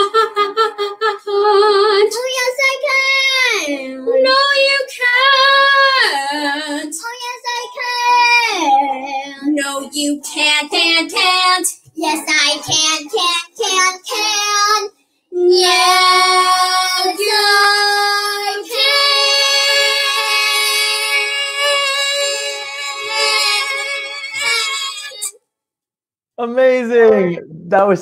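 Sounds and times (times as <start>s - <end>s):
girls singing duet: 0.0s - 25.4s.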